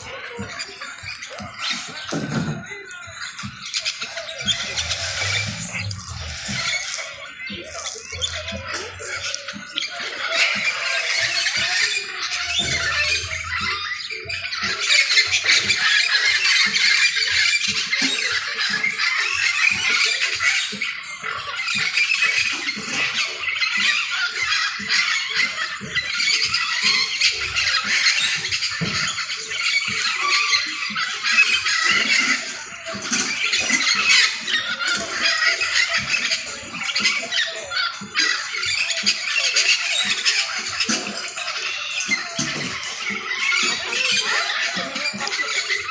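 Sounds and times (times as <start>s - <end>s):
parakeets squawking and chattering: 0.0s - 45.9s.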